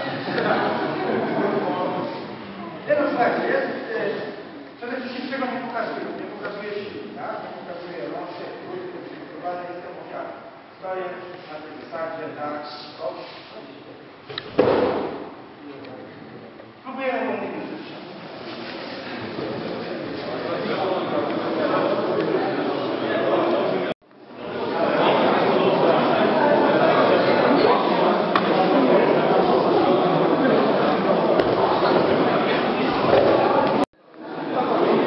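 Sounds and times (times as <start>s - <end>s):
chatter of many people: 0.0s - 35.0s.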